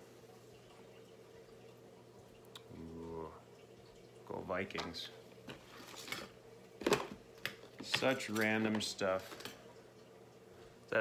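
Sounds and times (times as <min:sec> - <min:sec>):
rustles and knocks of objects: 0:05.4 - 0:09.6.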